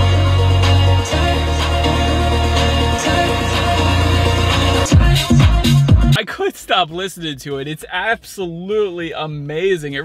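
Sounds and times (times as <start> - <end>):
car radio music with heavy bass: 0.0 - 7.4.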